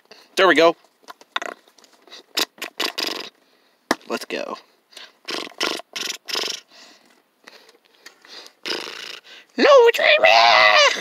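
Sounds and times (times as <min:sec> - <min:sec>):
person shouting: 0:09.6 - 0:11.0.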